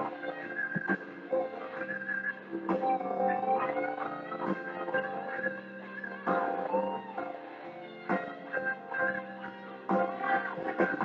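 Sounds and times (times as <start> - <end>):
band backing: 0.0 - 11.0.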